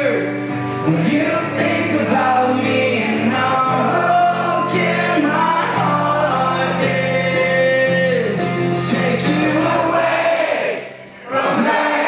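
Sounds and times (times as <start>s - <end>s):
crowd singing in unison: 0.0s - 12.0s
strummed acoustic guitar: 0.0s - 12.0s.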